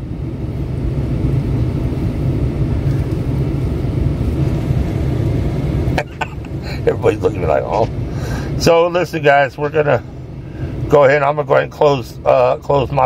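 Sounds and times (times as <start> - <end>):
truck engine idling: 0.0 - 13.0.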